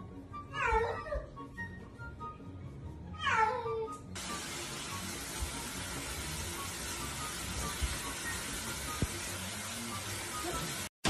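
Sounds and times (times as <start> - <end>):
cat meowing: 0.5 - 1.3, 3.2 - 3.9.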